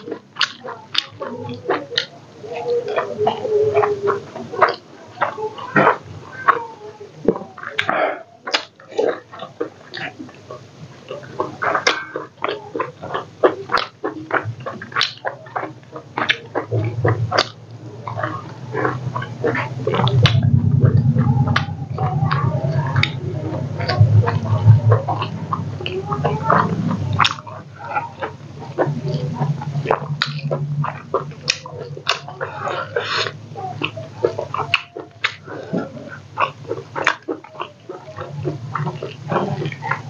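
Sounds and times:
wet chewing and lip-smacking: 0.0s - 6.6s, 7.2s - 40.0s
low hum: 15.6s - 40.0s.

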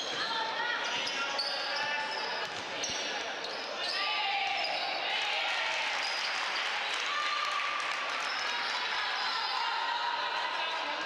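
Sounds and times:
sneakers squeaking on court: 0.8s - 4.0s.

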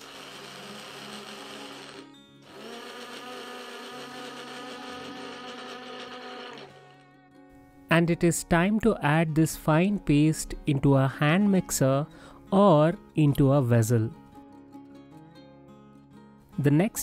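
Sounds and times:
blender motor grinding: 0.0s - 7.2s.

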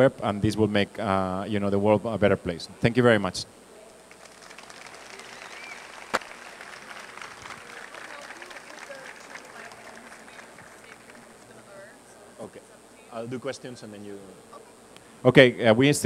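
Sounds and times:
audience applause: 4.1s - 11.6s.

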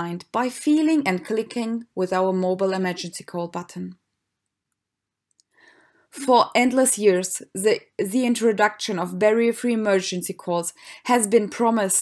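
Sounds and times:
person narrating: 0.0s - 4.0s, 6.2s - 12.0s
faint clicks: 4.7s - 5.6s.

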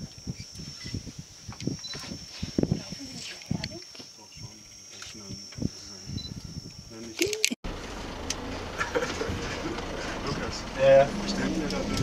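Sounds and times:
high-pitched insect drone: 0.0s - 7.4s.

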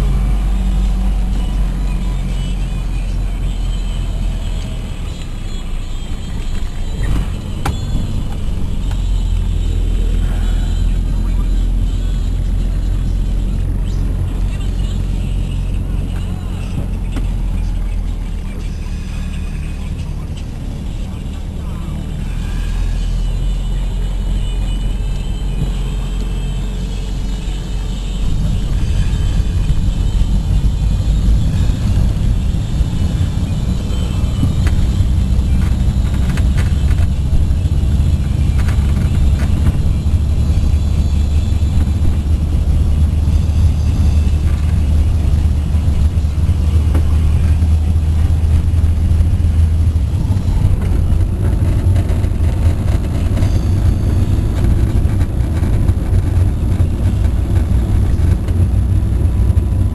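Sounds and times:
car interior road noise: 0.0s - 59.9s.

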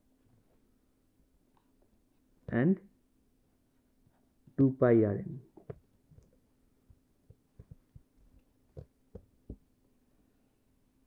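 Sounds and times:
faint steady hum: 0.0s - 11.0s
soft taps: 5.6s - 9.7s.

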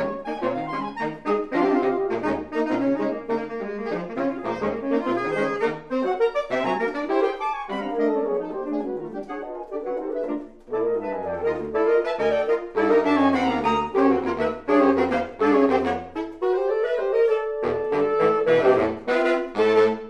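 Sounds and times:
baritone saxophone bass line: 0.0s - 20.0s
saxophone quartet playing: 0.0s - 20.0s.

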